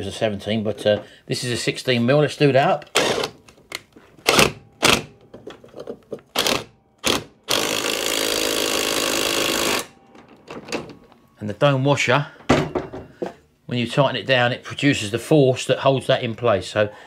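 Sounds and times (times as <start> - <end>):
cordless wrench whirring: 2.9 - 3.4, 6.3 - 9.9.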